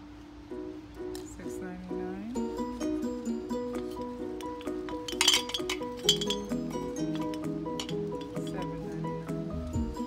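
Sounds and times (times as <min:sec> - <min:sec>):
plucked-string background music: 0:00.0 - 0:10.0
ornaments clinking together: 0:02.8 - 0:09.0.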